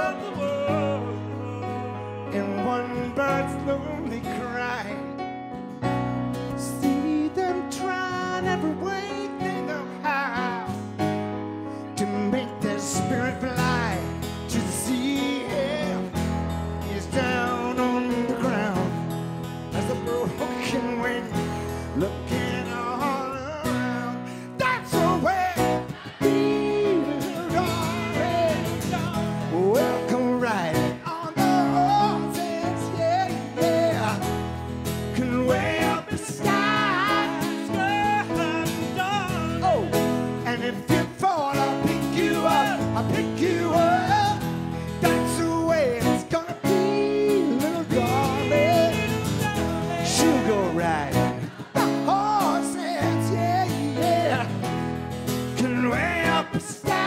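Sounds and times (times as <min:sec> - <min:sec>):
man singing: 0:00.0 - 0:05.2, 0:06.4 - 0:11.2, 0:11.8 - 0:57.0
acoustic guitar: 0:00.0 - 0:57.0
keyboard: 0:00.0 - 0:57.0
live pop-rock band: 0:00.0 - 0:57.0.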